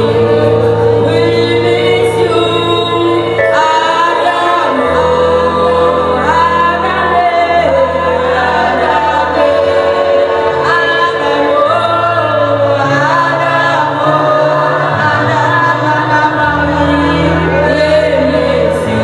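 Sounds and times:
choir singing gospel: 0.0 - 19.0.

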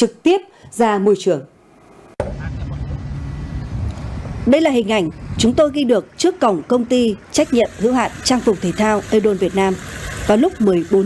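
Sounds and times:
low outdoor rumble: 1.6 - 11.0.

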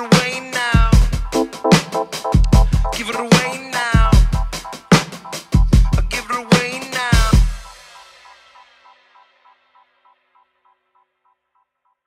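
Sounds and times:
dub reggae music: 0.0 - 9.9.

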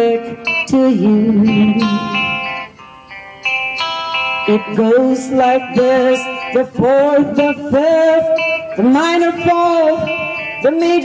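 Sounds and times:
person singing: 0.0 - 2.8, 3.8 - 11.0
plucked guitar notes: 0.0 - 11.0.

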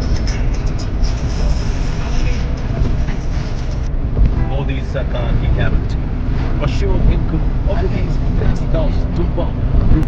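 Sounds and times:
car road rumble and engine: 0.0 - 10.0
indistinct voices talking: 0.0 - 10.0.

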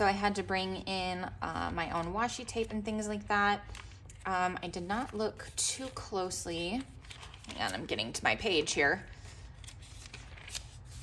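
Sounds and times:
paper pages flipping: 3.6 - 11.0
soft paper rustles: 3.6 - 11.0.

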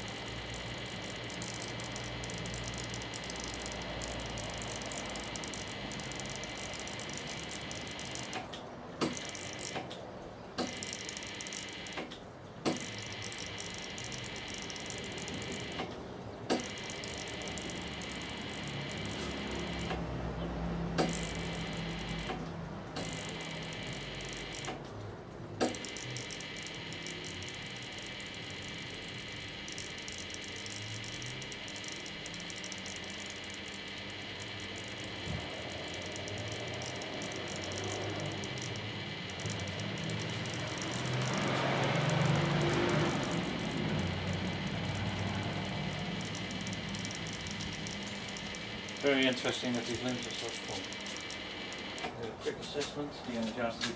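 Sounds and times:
sharp clicks: 0.0 - 53.9
transformers buzzing: 0.0 - 53.9.

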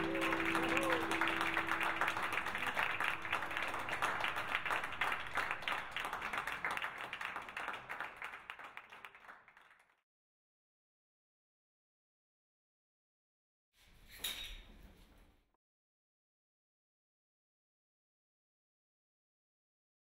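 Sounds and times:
classical guitar chord ringing: 0.0 - 3.5
audience applause: 0.0 - 9.9.

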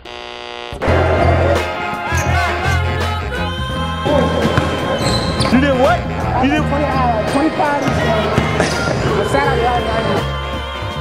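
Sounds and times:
background music with bass beat: 0.8 - 11.0
voices: 0.8 - 11.0
basketball bouncing on gym floor: 4.2 - 6.0, 7.8 - 9.4.

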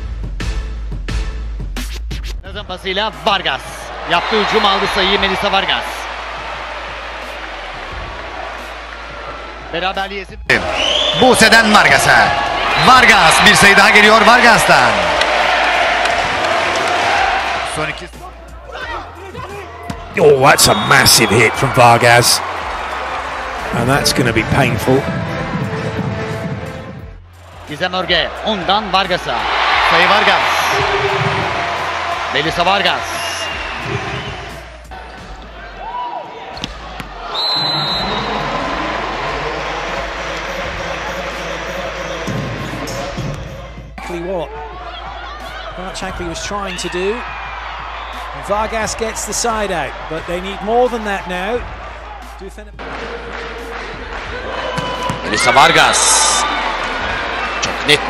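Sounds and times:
crowd cheering: 3.2 - 58.0
commentator talking: 20.1 - 22.5, 23.6 - 25.1
volleyball strikes: 54.6 - 55.3.

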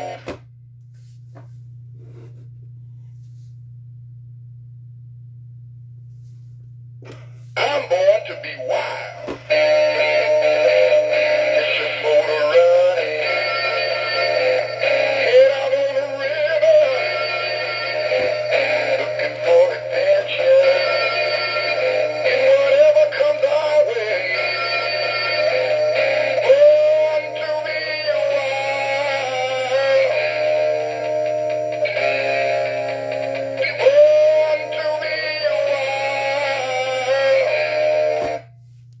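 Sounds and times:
steady low hum: 0.0 - 39.0
recorded voice singing: 7.6 - 30.4, 33.5 - 38.3
backing music: 7.6 - 38.4.

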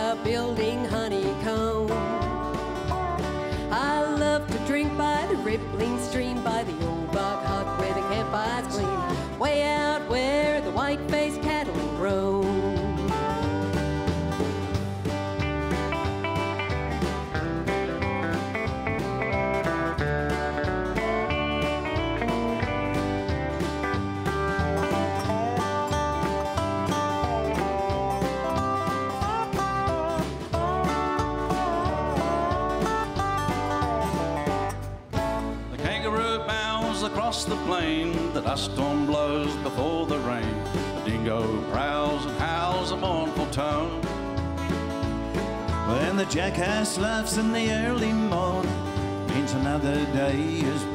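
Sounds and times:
acoustic guitar: 0.0 - 50.9
live country band playing: 0.0 - 50.9.

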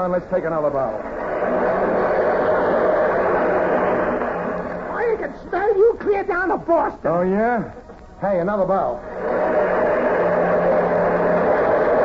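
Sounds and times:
audience applauding: 0.8 - 5.4, 9.0 - 12.0.

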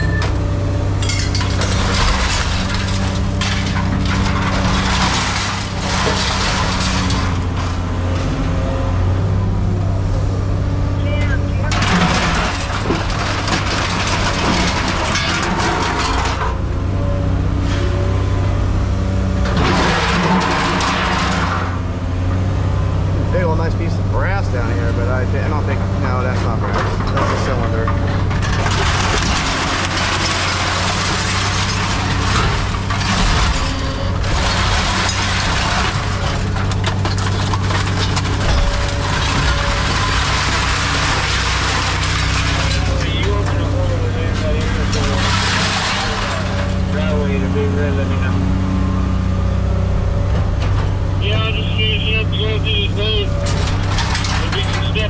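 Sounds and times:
diesel engine running: 0.0 - 55.0
hydraulic and scrap metal noise: 0.0 - 55.0.

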